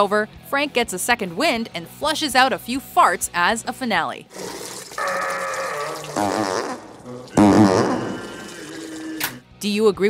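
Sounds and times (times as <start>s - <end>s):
fart sound effects: 4.3s - 9.4s.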